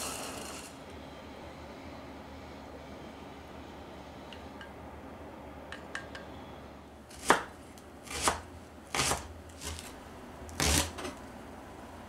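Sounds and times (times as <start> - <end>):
knife cutting on wooden board: 8.1 - 9.9, 10.6 - 11.1.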